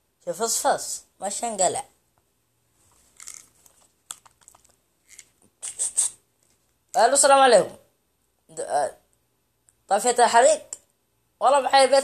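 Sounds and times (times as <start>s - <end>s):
rustling: 2.6s - 7.0s.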